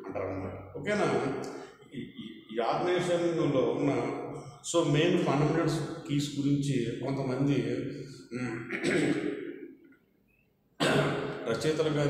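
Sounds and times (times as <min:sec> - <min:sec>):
man lecturing: 0:00.0 - 0:09.6, 0:10.8 - 0:12.0.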